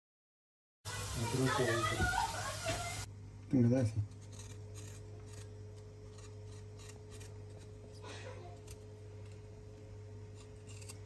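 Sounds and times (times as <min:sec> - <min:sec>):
steady low hum: 0:03.1 - 0:11.0
knife scraping raw chicken: 0:04.0 - 0:08.9, 0:10.3 - 0:11.0.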